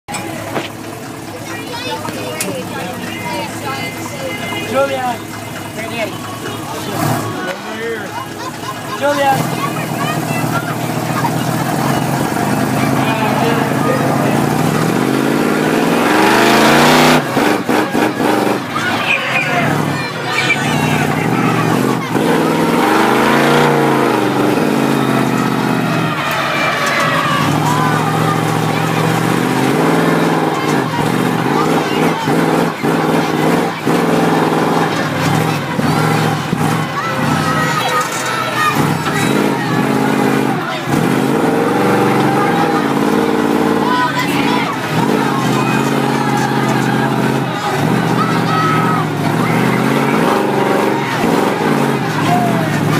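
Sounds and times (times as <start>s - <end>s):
monster truck engine revving: 0.0s - 52.9s.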